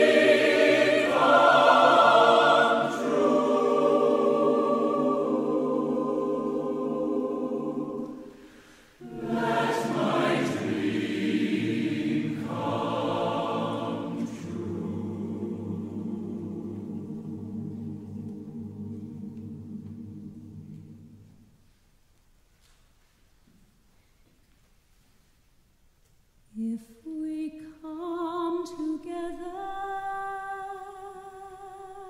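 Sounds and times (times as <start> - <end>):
choir singing sustained chords: 0.0 - 21.6.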